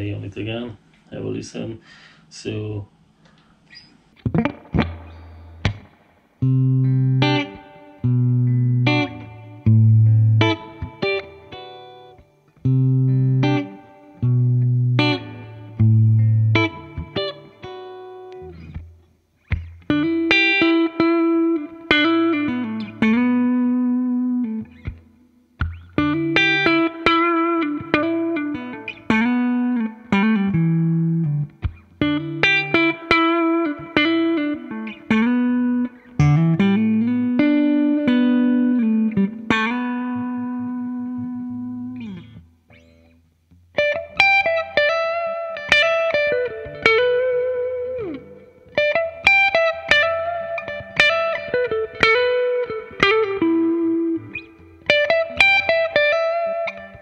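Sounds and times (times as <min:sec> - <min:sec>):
electric guitar lead phrases: 0:03.7 - 0:57.0.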